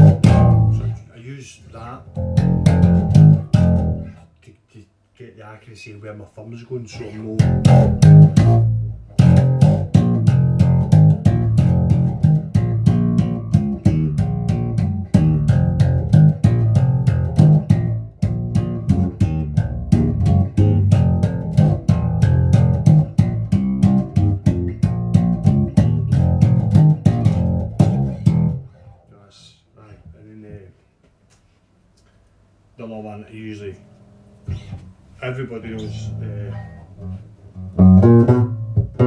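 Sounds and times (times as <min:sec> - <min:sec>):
slapped bass guitar run: 0:00.0 - 0:01.0, 0:02.1 - 0:04.2, 0:07.3 - 0:29.0, 0:35.6 - 0:39.0.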